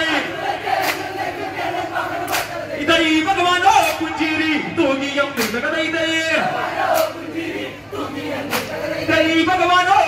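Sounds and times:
hand clap: 0.8s - 1.1s, 2.3s - 2.5s, 5.4s - 5.6s, 8.5s - 8.7s
men singing folk song in chorus: 6.4s - 10.0s.

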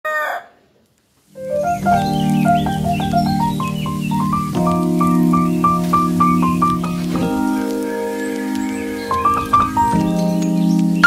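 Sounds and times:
background music: 1.4s - 11.0s.

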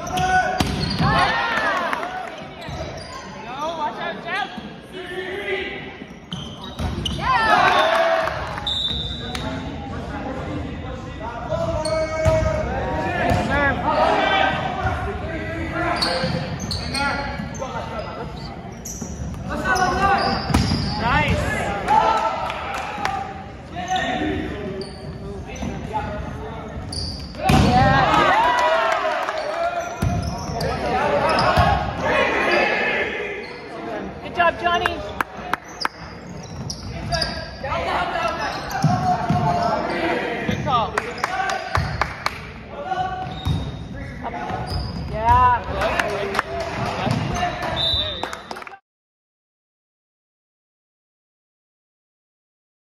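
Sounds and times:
sneakers squeaking on floor: 0.0s - 1.2s, 2.3s - 4.8s, 6.0s - 7.5s, 8.5s - 9.8s, 15.8s - 21.5s, 23.8s - 27.7s, 29.3s - 32.1s, 33.4s - 34.1s, 35.0s - 42.0s, 43.0s - 45.7s.

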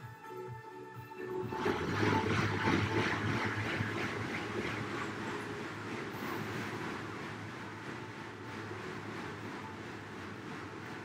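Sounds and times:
exercise bike fan whooshing: 0.0s - 11.0s.

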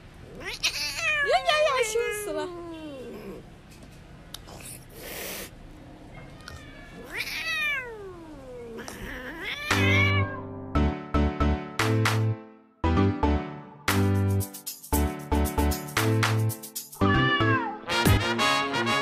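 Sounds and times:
cat meowing: 0.2s - 3.4s, 6.1s - 10.5s, 17.0s - 17.9s.

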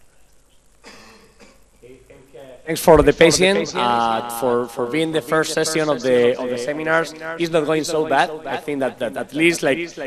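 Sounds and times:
person clearing throat: 0.8s - 2.0s.

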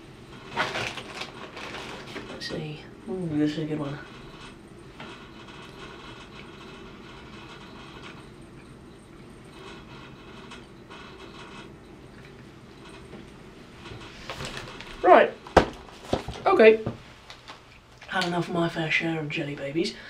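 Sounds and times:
low hum and hiss: 0.0s - 20.0s.

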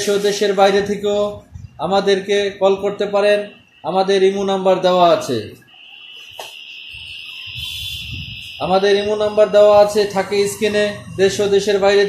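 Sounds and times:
steady high-pitched tone: 1.8s - 12.0s.

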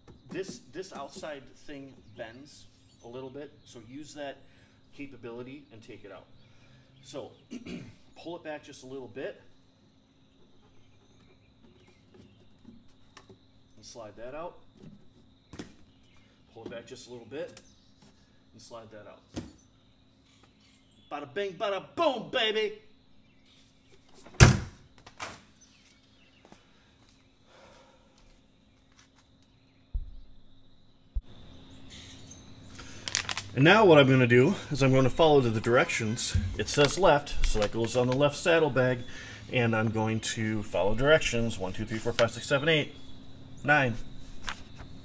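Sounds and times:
dull low thump: 29.9s - 30.4s.

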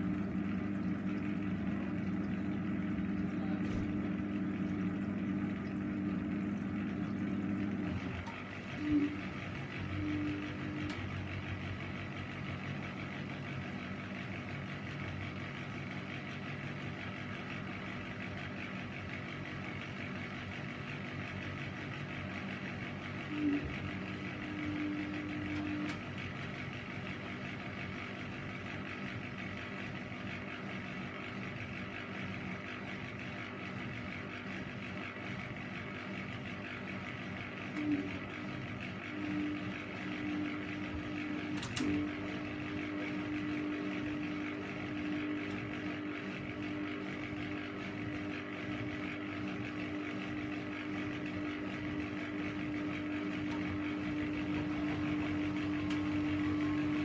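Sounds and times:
low hum: 0.0s - 12.0s
washing machine whirring: 0.0s - 57.0s.

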